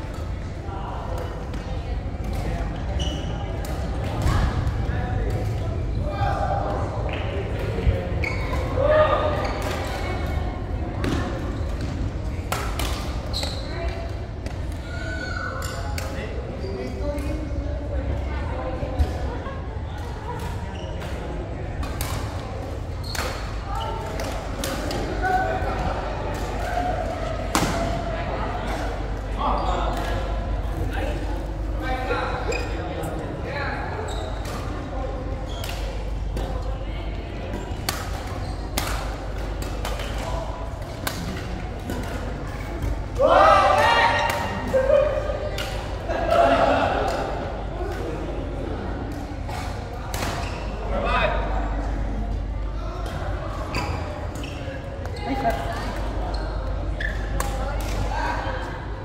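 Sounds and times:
people's voices: 0.0s - 59.0s.

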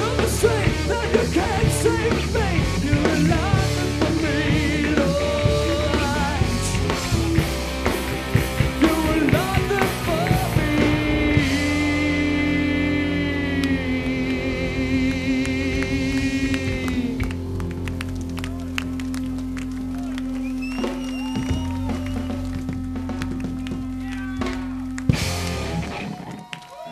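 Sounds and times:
drum and cymbal hits: 0.0s - 12.4s.

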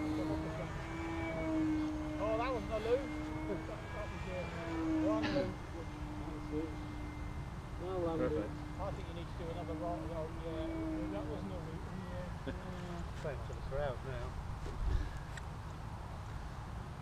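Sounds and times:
model plane motor droning: 0.0s - 17.0s.

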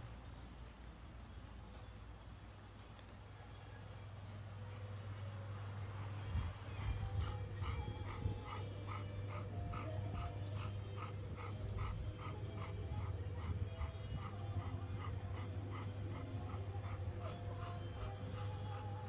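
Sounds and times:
background music: 4.2s - 19.0s
dog whimpering: 6.6s - 19.0s.

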